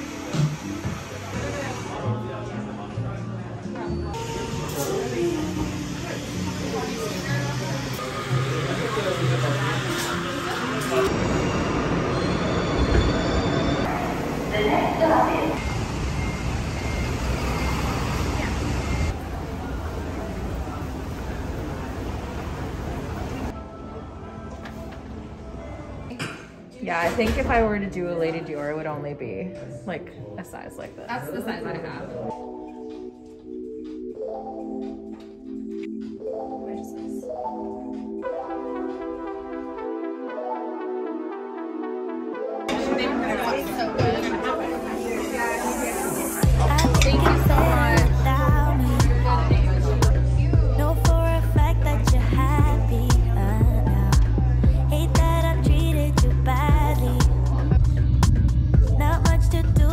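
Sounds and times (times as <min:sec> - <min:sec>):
diners talking: 0:01.1 - 0:11.2, 0:13.8 - 0:15.6, 0:42.6 - 0:55.6
road vehicles rumbling: 0:09.6 - 0:23.5.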